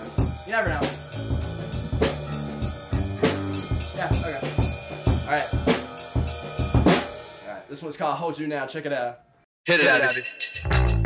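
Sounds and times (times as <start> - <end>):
bass guitar low notes: 0.0 - 5.7, 10.6 - 11.0
rock drum kit: 0.0 - 7.6, 10.5 - 11.0.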